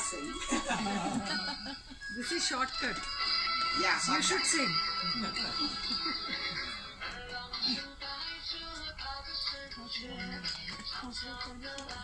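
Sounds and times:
person singing: 0:04.7 - 0:12.0.

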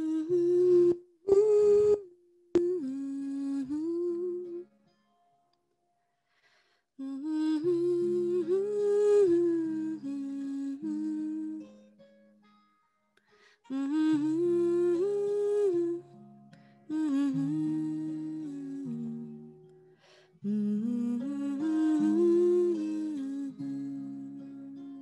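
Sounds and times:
acoustic guitar notes: 0:00.0 - 0:05.5, 0:07.2 - 0:25.0.

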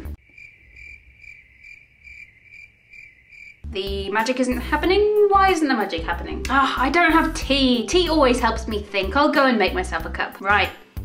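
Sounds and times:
cricket chirping: 0:00.0 - 0:03.7.

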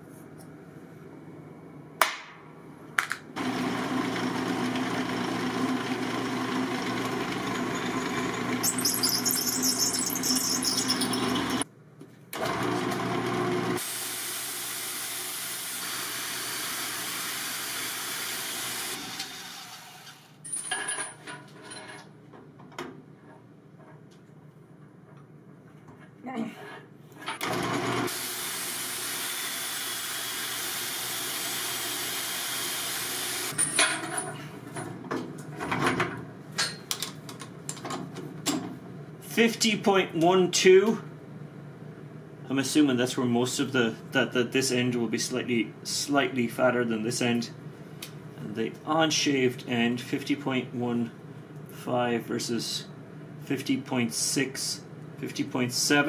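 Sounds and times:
belt sander grinding metal: 0:03.4 - 0:11.6
drill press spinning: 0:03.4 - 0:11.6, 0:12.4 - 0:20.4, 0:27.2 - 0:33.6.

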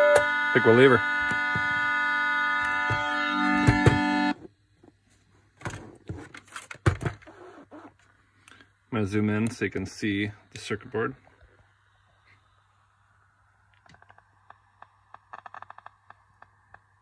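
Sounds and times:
electronic organ-like chord: 0:00.0 - 0:04.4.

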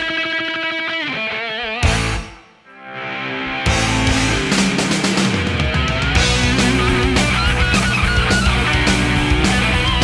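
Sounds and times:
distorted electric guitar: 0:00.0 - 0:10.0
bass and drums: 0:01.8 - 0:02.4, 0:03.7 - 0:10.0
full-band hit: 0:03.4 - 0:10.0.

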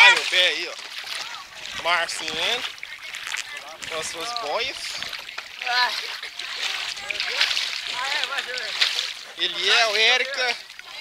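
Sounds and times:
faint voices: 0:00.0 - 0:11.0
water sloshing and splashing: 0:00.0 - 0:11.0.

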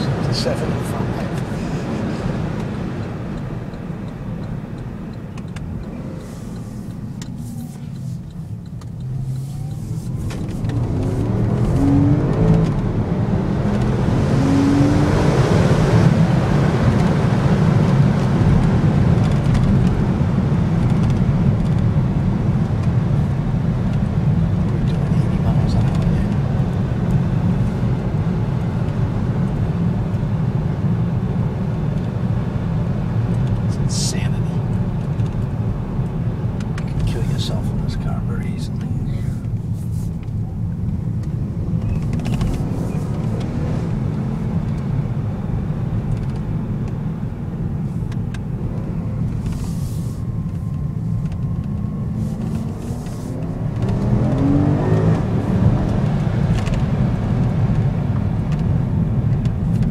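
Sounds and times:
car engine accelerating: 0:00.0 - 0:59.9
road noise inside car: 0:00.0 - 0:59.9.

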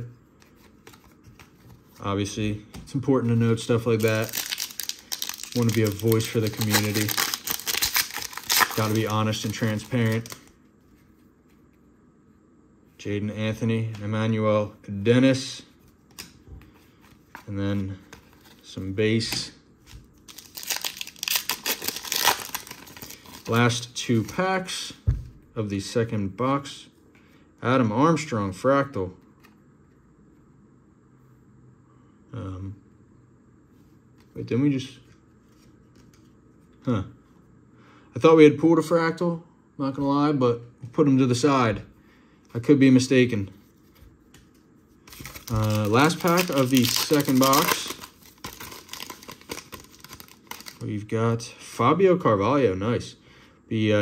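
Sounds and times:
foil wrapper tearing and crinkling: 0:03.9 - 0:10.5, 0:20.2 - 0:23.6, 0:45.1 - 0:50.8.

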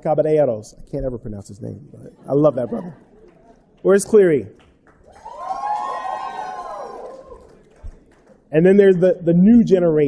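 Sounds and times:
audience whooping and cheering: 0:05.0 - 0:07.9.

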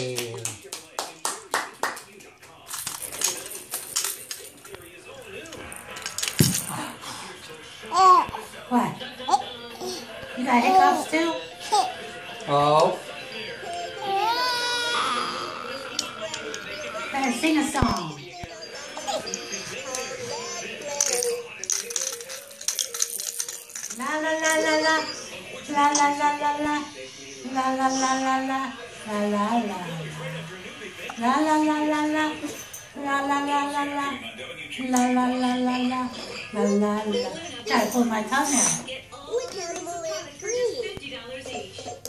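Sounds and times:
plastic toys clicking and rattling: 0:02.7 - 0:04.7, 0:05.8 - 0:06.8, 0:20.9 - 0:24.0
baby cooing: 0:07.9 - 0:08.4, 0:10.6 - 0:11.9, 0:13.6 - 0:17.2, 0:18.8 - 0:19.4.

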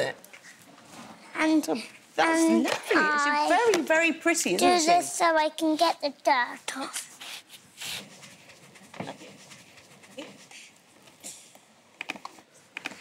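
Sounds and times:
brush scrubbing wool fleece: 0:07.2 - 0:10.8.

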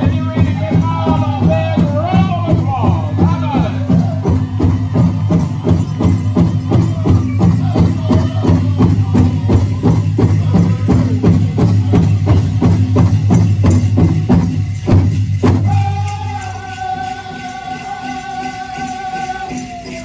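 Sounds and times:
singers' voices: 0:00.0 - 0:13.0, 0:15.5 - 0:20.0
big drum beating: 0:00.0 - 0:17.3.

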